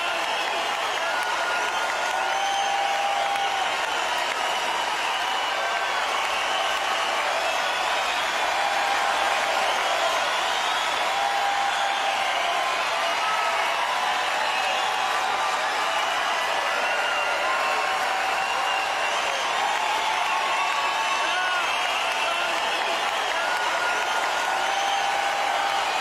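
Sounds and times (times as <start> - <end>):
crowd cheering and applauding: 0.0 - 26.0
shrill whistles: 0.0 - 26.0.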